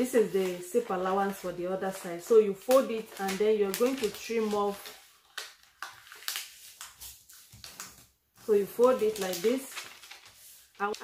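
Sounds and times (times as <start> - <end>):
paper rustling being folded: 0.0 - 11.0.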